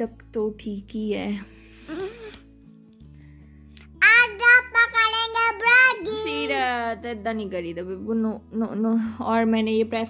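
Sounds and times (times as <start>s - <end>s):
girl singing: 4.2s - 6.4s.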